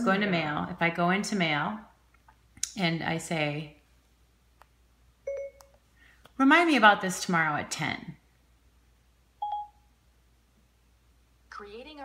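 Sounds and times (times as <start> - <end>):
short electronic beep: 5.3 - 5.6.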